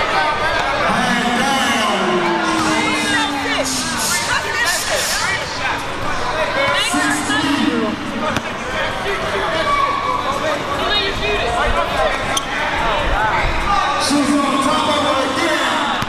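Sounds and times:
spectators chatting and calling: 0.0 - 16.0.

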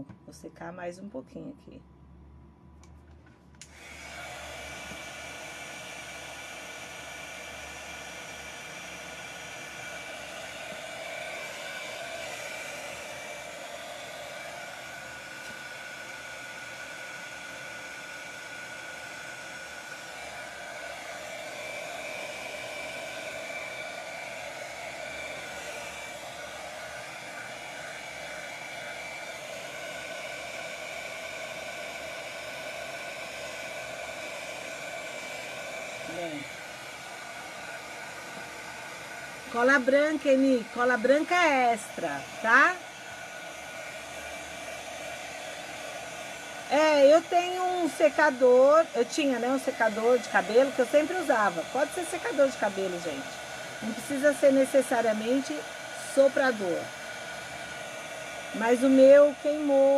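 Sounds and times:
heat gun blowing air: 3.6 - 59.9.

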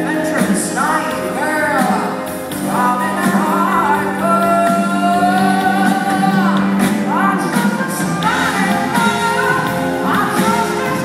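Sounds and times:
pop band chord: 0.0 - 11.0.

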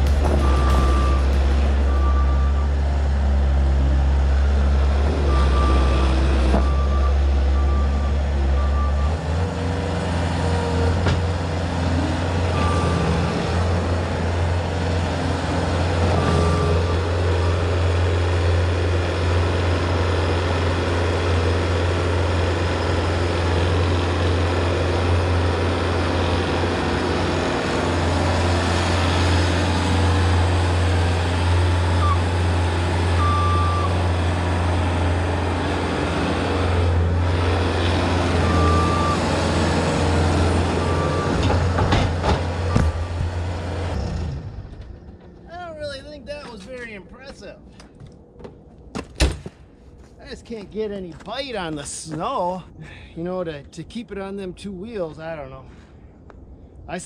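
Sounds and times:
diesel engine running at high throttle: 0.0 - 45.3
backup alarm beeping: 0.4 - 2.8.

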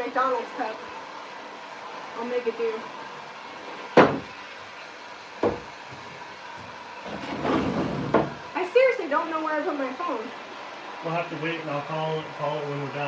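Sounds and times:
woman's voice: 0.0 - 0.8, 2.2 - 2.9, 8.5 - 10.4
wood knocking on wood: 4.0 - 4.3, 5.4 - 8.4.

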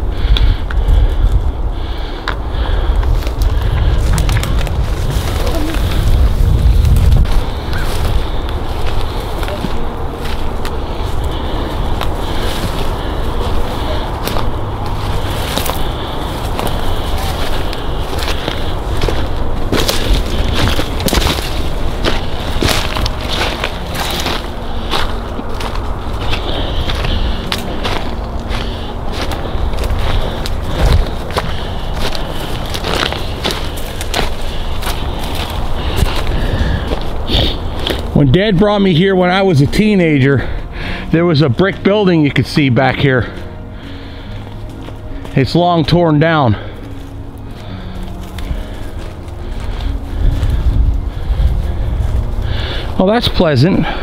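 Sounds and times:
low microphone rumble: 0.0 - 54.0
footsteps crunching through dry leaves: 0.2 - 54.0.

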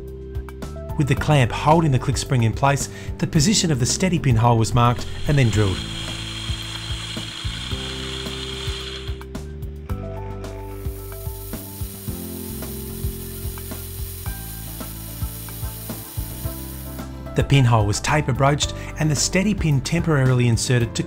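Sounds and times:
background music: 0.0 - 21.0
small drill cutting metal: 4.9 - 9.2, 10.9 - 17.0.

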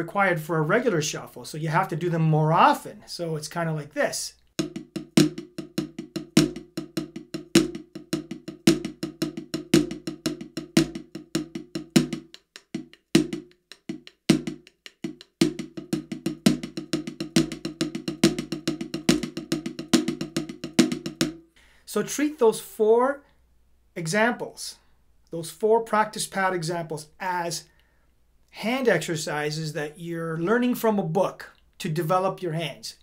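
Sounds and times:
drumsticks on a practice pad: 4.6 - 21.4.

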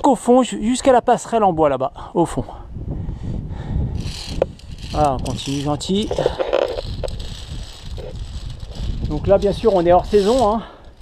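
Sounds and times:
wind buffeting microphone: 0.6 - 11.0
climbing gear clicks and rustle: 4.0 - 11.0.

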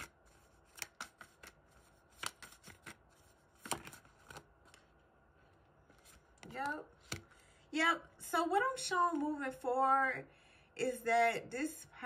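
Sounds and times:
cards shuffling: 0.0 - 4.9.

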